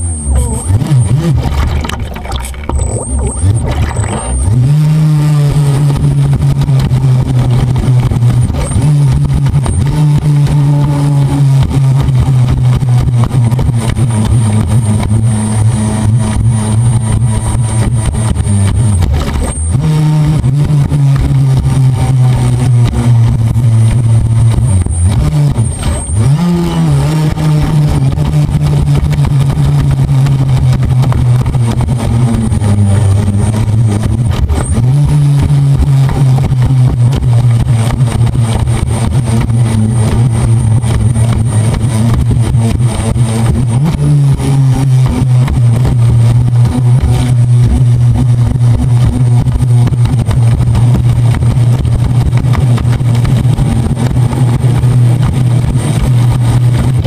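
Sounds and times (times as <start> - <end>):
speedboat motor running: 0.0 - 57.0
water splashing against hull: 0.6 - 10.5.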